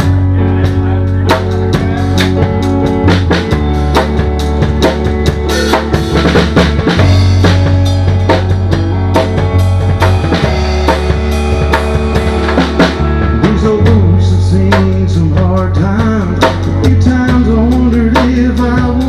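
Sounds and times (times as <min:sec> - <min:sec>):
drum kit steady beat: 0:00.0 - 0:19.0
guitar: 0:00.0 - 0:19.0
low bass notes: 0:00.0 - 0:19.0.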